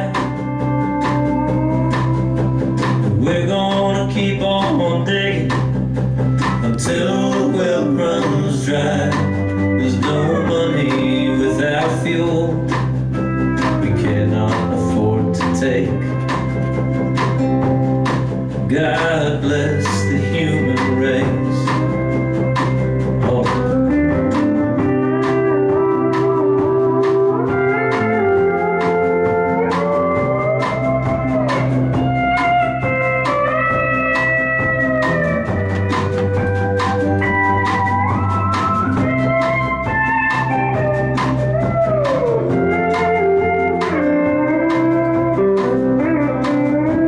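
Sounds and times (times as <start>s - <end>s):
acoustic guitar strumming: 0.0s - 47.0s
bending lead melody: 0.0s - 47.0s
drums and cymbal hits: 0.0s - 47.0s
electric bass: 0.0s - 47.0s.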